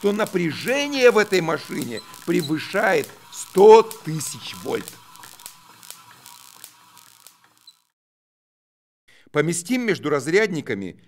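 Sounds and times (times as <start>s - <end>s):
spinning discs whirring: 0.0s - 7.9s.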